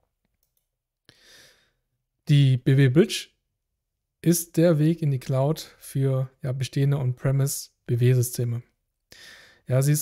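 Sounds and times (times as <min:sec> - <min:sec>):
person breathing in: 0:01.1 - 0:01.8, 0:09.1 - 0:09.7.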